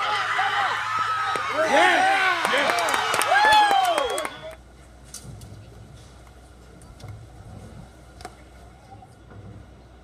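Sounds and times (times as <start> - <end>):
spectator cheering shout: 0.0 - 4.6.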